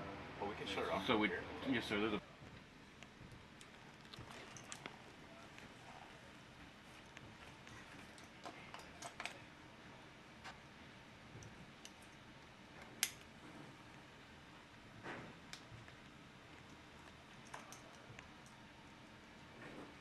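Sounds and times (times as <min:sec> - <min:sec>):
buckles clicking: 0:16.6 - 0:18.6.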